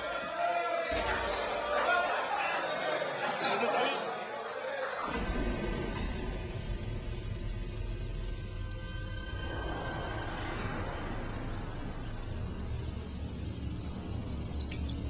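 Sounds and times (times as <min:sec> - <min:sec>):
men chattering and chuckling: 0:00.0 - 0:05.2
showers running: 0:00.0 - 0:15.0.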